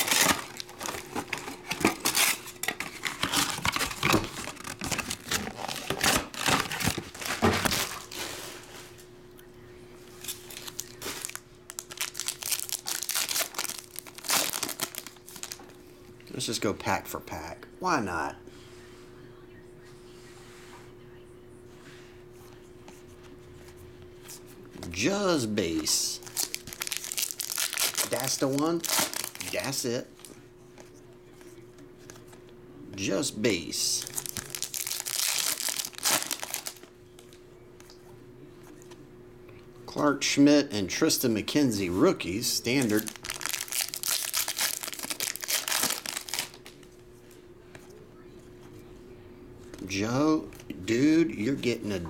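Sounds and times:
foil wrapper tearing and crinkling: 0.0 - 8.3, 10.2 - 15.6, 26.2 - 29.8, 34.0 - 36.9, 42.7 - 46.8
steady low hum: 0.0 - 52.0.

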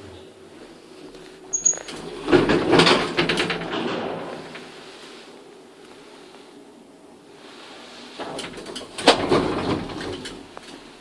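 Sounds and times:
elevator doors sliding open: 1.5 - 4.9, 8.0 - 11.0.

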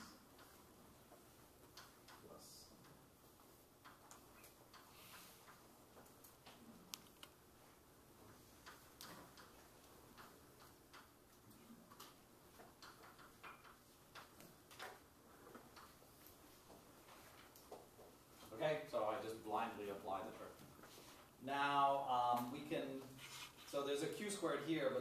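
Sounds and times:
chalk tapping and scratching: 23.2 - 23.8.

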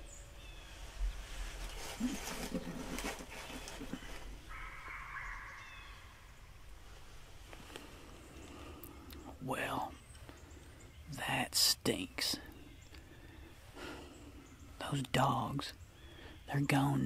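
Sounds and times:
distant dogs barking: 3.6 - 6.7.

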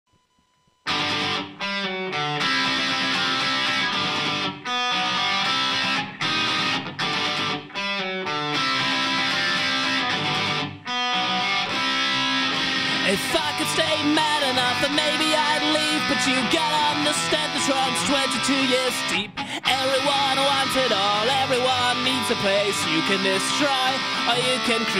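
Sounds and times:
electric guitar strumming chords: 0.9 - 24.9.

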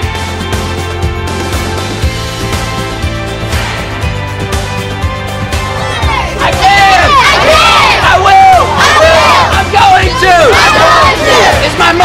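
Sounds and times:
children shouting and cheering: 5.2 - 12.0.

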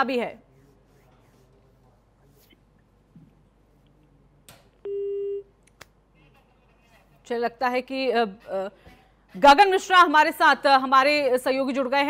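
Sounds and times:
telephone line beep: 4.9 - 5.4.

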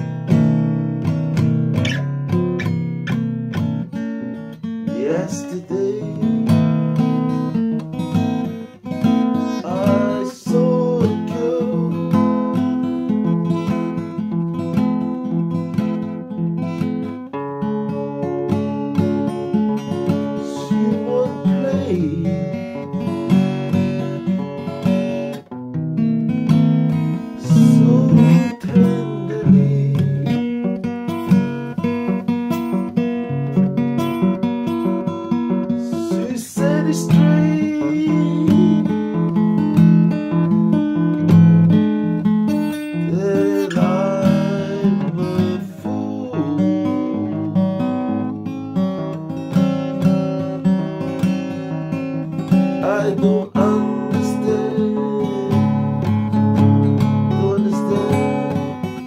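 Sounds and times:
acoustic guitar music: 0.0 - 59.0.

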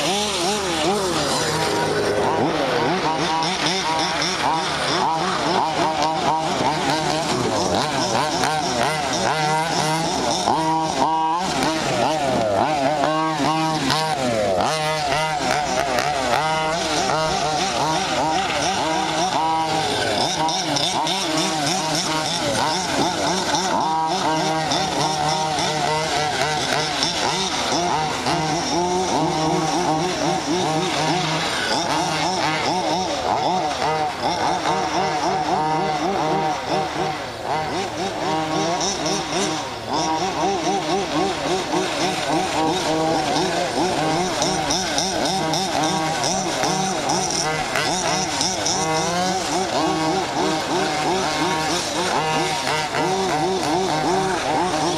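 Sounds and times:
rc car engines revving: 0.0 - 54.9.

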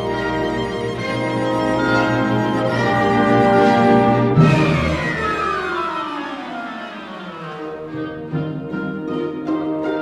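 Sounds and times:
orchestral string music: 0.0 - 10.0.

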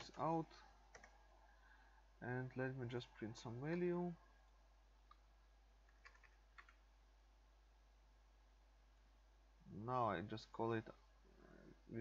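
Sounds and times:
computer keyboard clicks: 0.9 - 1.2, 5.9 - 6.8.

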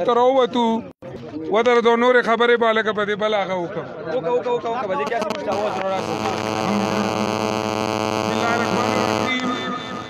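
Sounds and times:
electrical hum: 5.2 - 10.0.

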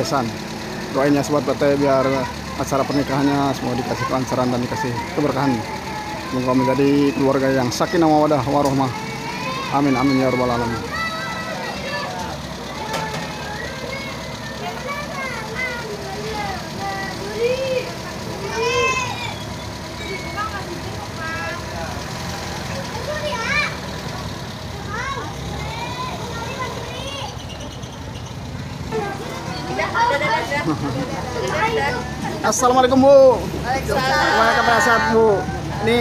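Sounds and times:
adults and children talking: 0.0 - 36.0
vehicle engine idling: 0.0 - 36.0.

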